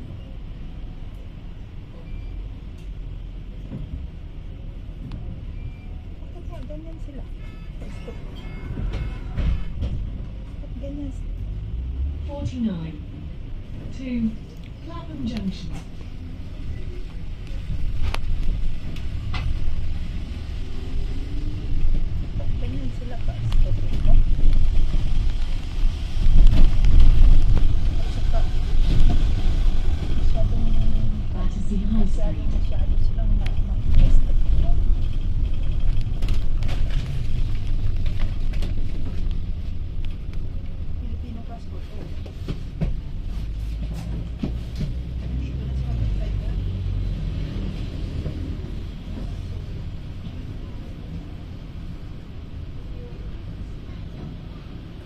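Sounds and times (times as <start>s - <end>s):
bus engine rumble: 0.0s - 55.0s
clicks and rattles from bus body: 7.8s - 10.6s, 17.4s - 19.8s, 26.2s - 27.8s, 33.2s - 40.8s, 41.8s - 45.4s.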